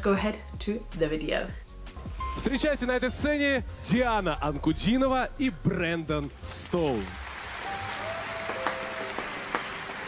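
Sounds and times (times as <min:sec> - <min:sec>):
audience applauding: 0:06.5 - 0:10.0.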